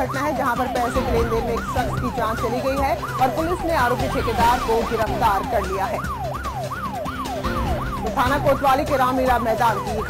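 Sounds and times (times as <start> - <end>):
wailing siren tone: 0.0 - 10.0.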